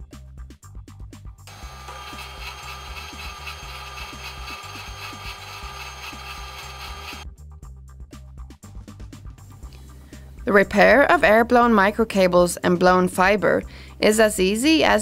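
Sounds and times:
testing machine rasping: 1.5s - 7.2s.

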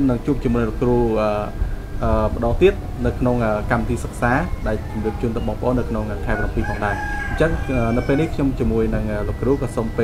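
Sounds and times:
rooster crowing: 2.8s - 10.0s.

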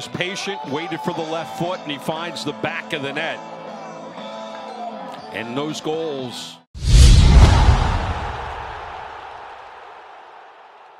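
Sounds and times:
deep boom and whoosh impact: 6.8s - 9.1s
noisy rush: 6.8s - 9.1s.

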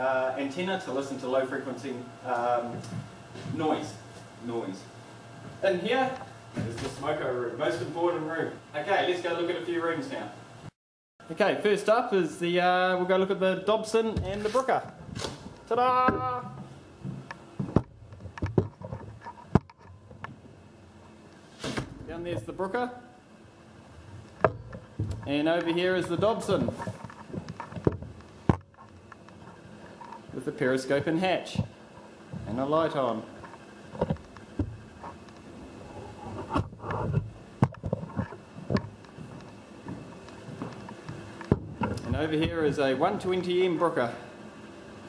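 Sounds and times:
footsteps: 14.0s - 19.6s, 24.0s - 30.3s, 31.5s - 43.5s.

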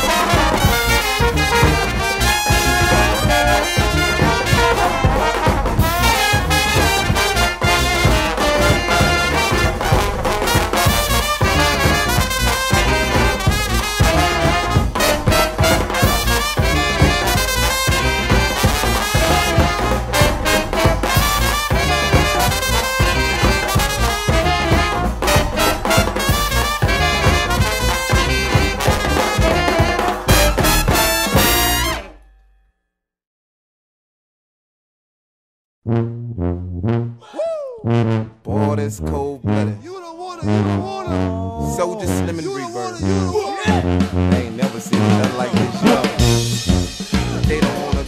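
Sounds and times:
steady drum beat: 0.0s - 32.0s, 40.0s - 48.0s
sousaphone bass line: 0.0s - 32.1s, 36.0s - 48.0s
trumpets and trombones: 0.0s - 32.2s, 35.9s - 37.2s, 37.8s - 48.0s.

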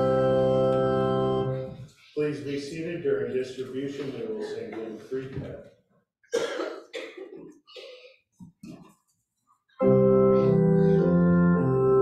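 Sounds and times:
person coughing: 4.4s - 5.1s, 6.3s - 8.1s.

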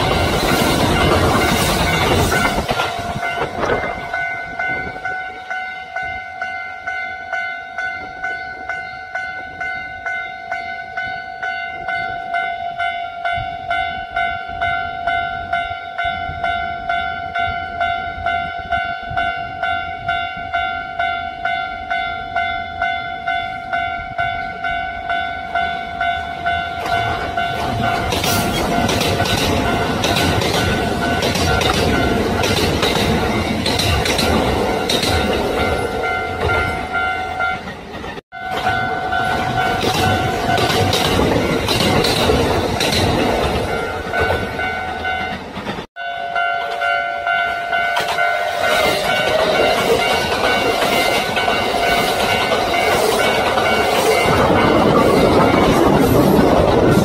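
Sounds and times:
wheels clattering over rail joints: 0.0s - 5.0s, 26.7s - 46.9s, 47.9s - 57.0s
electric train passing: 0.0s - 57.0s
level crossing warning bell: 0.0s - 57.0s.

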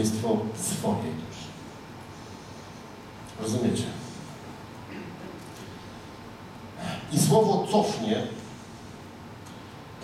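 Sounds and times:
microphone hiss: 0.0s - 10.0s
sharp intake of breath: 2.1s - 3.0s.

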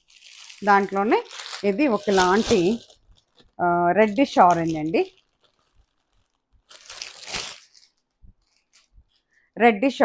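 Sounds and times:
plastic wrapping crinkling: 0.0s - 9.4s.

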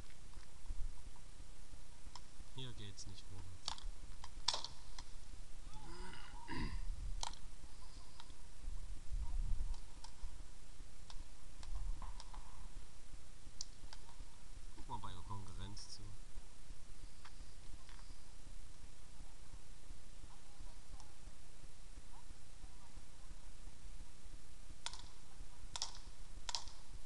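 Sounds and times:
paintball markers firing: 3.4s - 5.2s, 7.2s - 8.4s, 11.0s - 12.7s, 13.6s - 14.9s, 24.8s - 27.0s.

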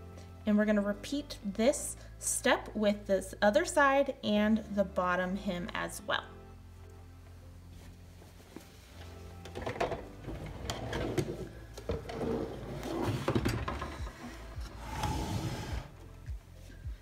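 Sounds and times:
quiet background music: 0.0s - 17.0s
fabric rustling: 7.7s - 9.4s
ironing board being shifted: 9.5s - 15.9s.

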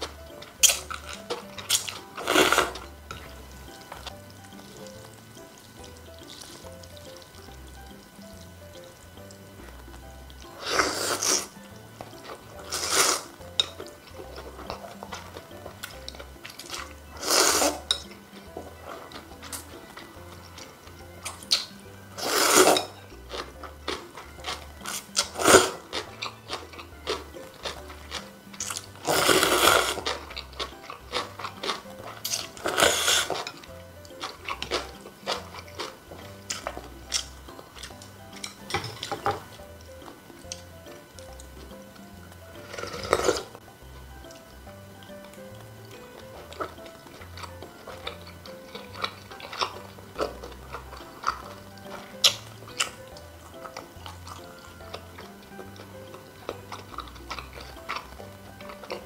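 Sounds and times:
wet chewing: 0.0s - 43.6s, 44.2s - 59.0s
noodle slurping: 0.6s - 2.9s, 10.4s - 11.6s, 12.2s - 13.4s, 14.1s - 17.9s, 18.8s - 36.0s, 42.6s - 43.6s.

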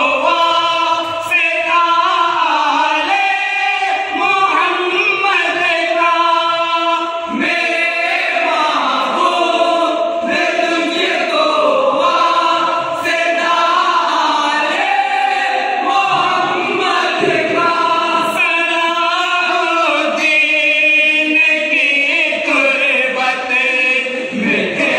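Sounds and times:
men singing unaccompanied: 0.0s - 24.9s.

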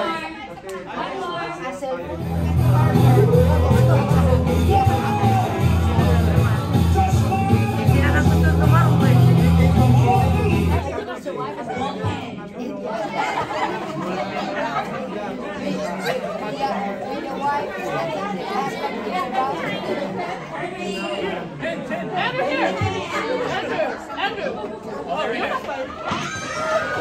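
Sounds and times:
crowd chatter in a large hall: 0.0s - 27.0s.

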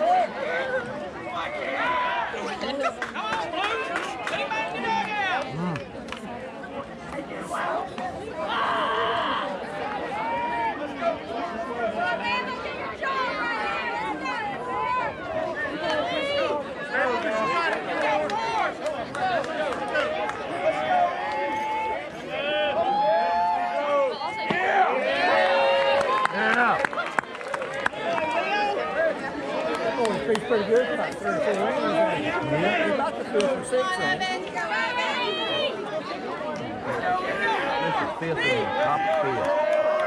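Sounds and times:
spectators chattering: 0.0s - 40.0s.

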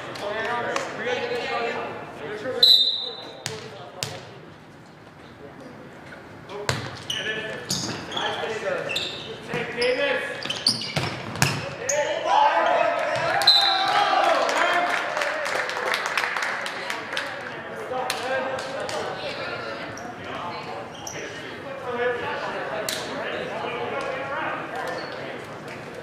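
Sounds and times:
referee's whistle: 2.6s - 3.3s, 13.4s - 14.0s
players shouting: 11.8s - 15.4s.

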